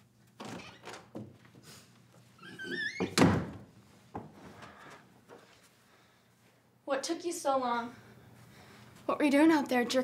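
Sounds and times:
door hinge squealing: 2.4s - 3.2s.

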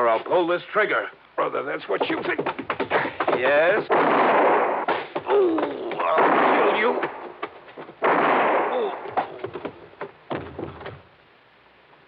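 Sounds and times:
scattered knocks: 1.8s - 6.1s, 7.0s - 8.1s, 9.0s - 11.1s
heavy thud: 2.1s - 11.1s
gunshot blast: 3.9s - 5.2s, 6.1s - 7.2s, 8.0s - 9.2s.

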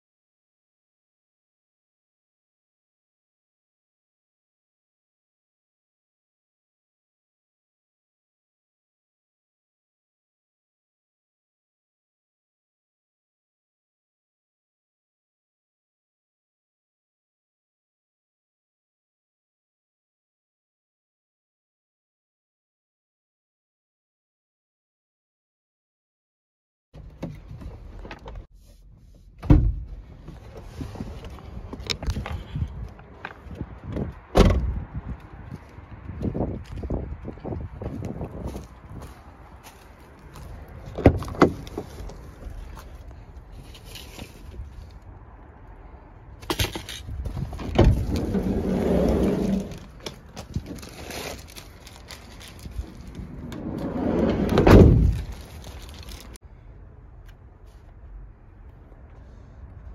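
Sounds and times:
parcels being moved about: 38.4s - 45.0s, 46.4s - 53.9s, 54.5s - 56.4s
van doors shutting: 46.5s - 50.6s, 52.7s - 55.4s
short rising rumble: 52.6s - 55.5s.

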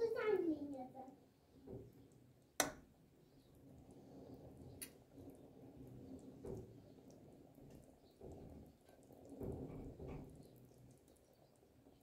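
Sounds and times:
bubbles popping in simmering pot: 0.0s - 12.0s.

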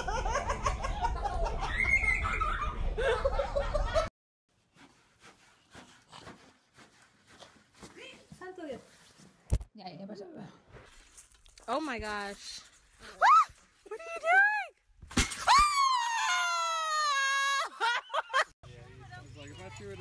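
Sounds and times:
people laughing: 0.0s - 4.1s, 17.5s - 18.5s.

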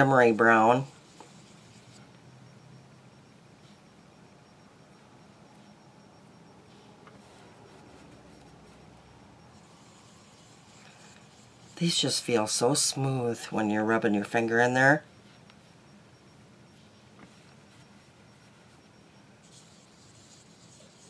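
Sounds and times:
fingertip rubbing eyeshadow powder: 9.6s - 12.9s, 16.8s - 21.0s
fingertip rubbing on skin: 19.4s - 21.0s.

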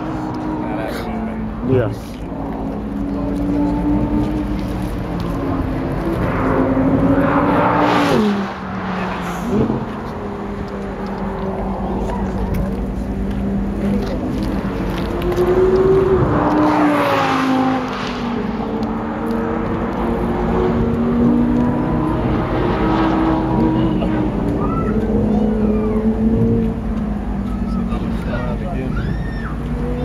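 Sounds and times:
car engine revving up: 0.0s - 30.0s
car engines running: 0.0s - 30.0s.

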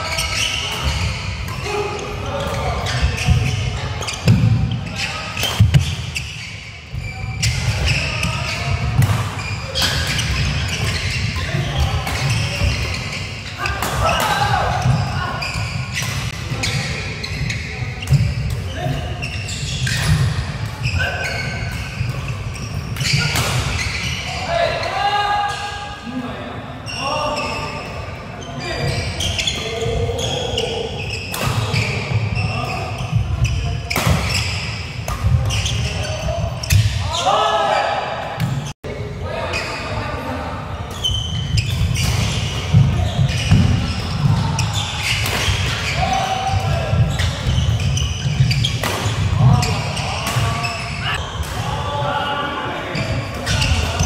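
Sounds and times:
shoes squeaking on floor: 0.0s - 24.9s, 26.9s - 37.5s, 40.9s - 51.4s, 52.8s - 54.0s.

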